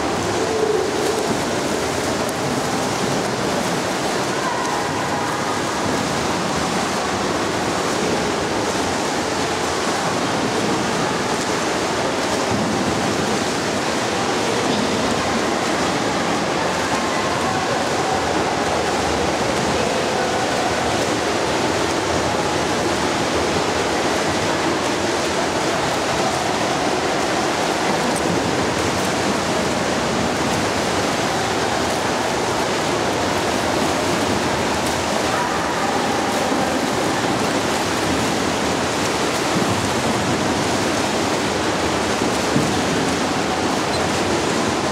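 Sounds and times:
swimmers splashing in pool: 0.0s - 44.9s.

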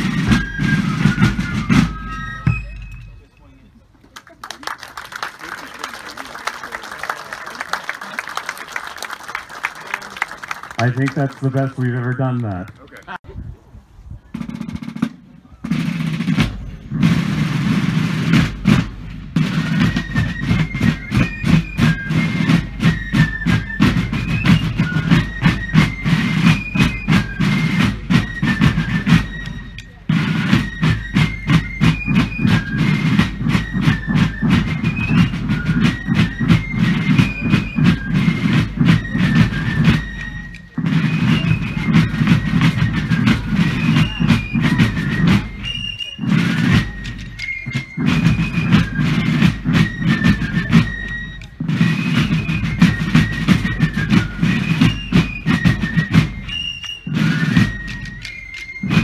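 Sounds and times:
drum roll: 0.0s - 3.2s, 14.4s - 59.0s.

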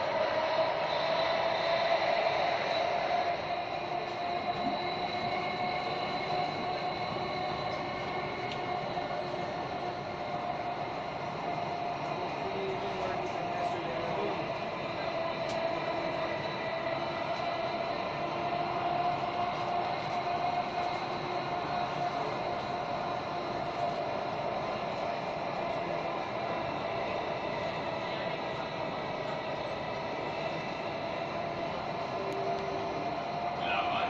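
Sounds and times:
train running noise: 0.0s - 34.0s
train whine: 0.0s - 34.0s.

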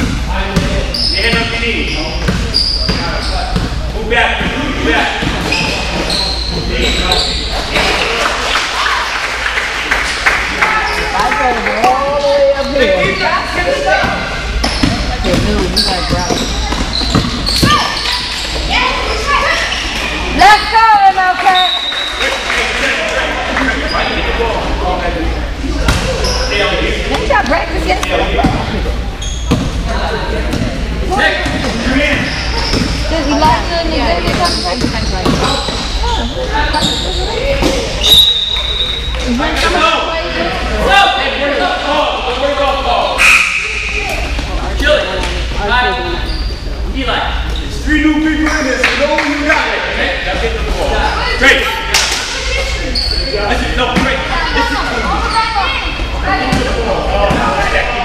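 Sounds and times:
basketball bouncing on gym floor: 0.0s - 1.5s, 2.2s - 3.8s, 14.0s - 18.1s, 31.4s - 35.8s
sneakers squeaking: 0.0s - 9.0s, 10.6s - 22.9s, 23.5s - 24.4s, 25.2s - 40.7s, 43.1s - 48.9s, 52.2s - 57.8s
voices echoing in a hall: 0.0s - 58.0s.

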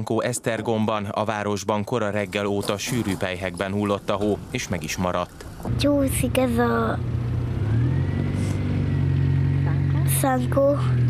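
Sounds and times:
vehicle engine running: 2.2s - 11.0s
child's voice: 5.7s - 7.0s, 9.7s - 11.0s.

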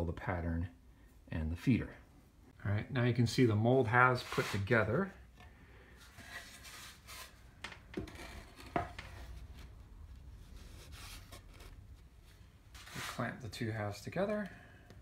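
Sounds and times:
wood and sand rubbing and scraping: 4.2s - 4.8s, 10.4s - 13.4s.

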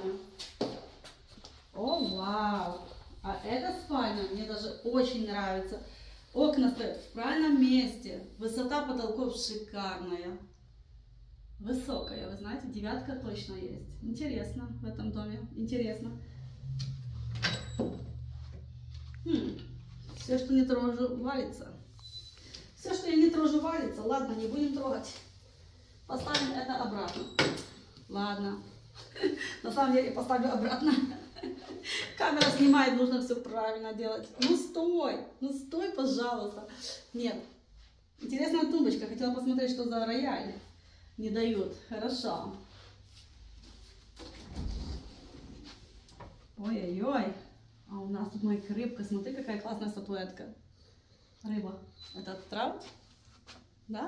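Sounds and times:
closet door rumbling scrape: 44.1s - 46.0s.

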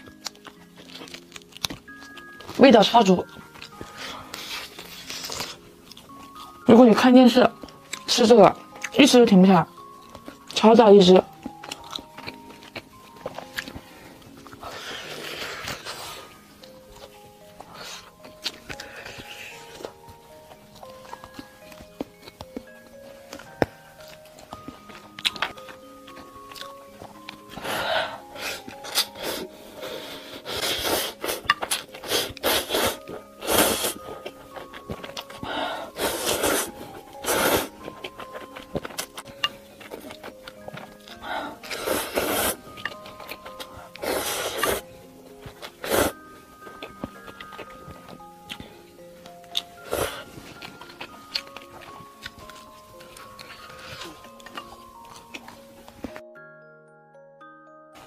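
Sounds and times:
light background music: 0.0s - 58.0s.

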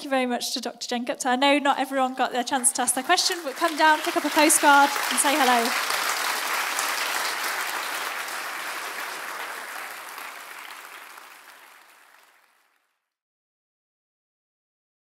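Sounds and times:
large audience applauding: 2.5s - 13.1s.

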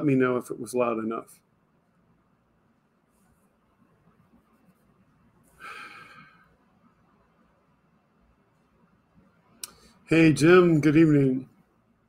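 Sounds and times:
man breathing in: 5.5s - 6.6s.

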